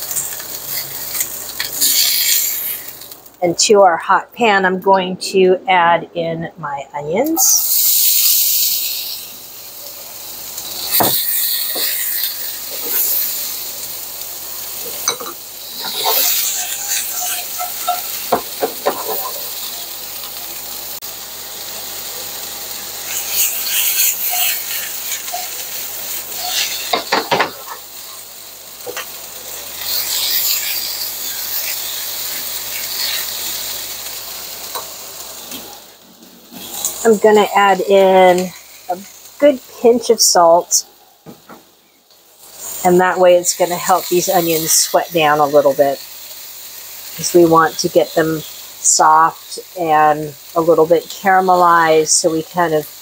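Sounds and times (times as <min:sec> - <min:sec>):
onions sizzling in frying pan: 0:00.0 - 0:03.6, 0:07.1 - 0:53.0
tongs clicking and scraping pan: 0:00.1 - 0:03.2, 0:14.8 - 0:20.4, 0:23.1 - 0:28.2, 0:29.8 - 0:33.7.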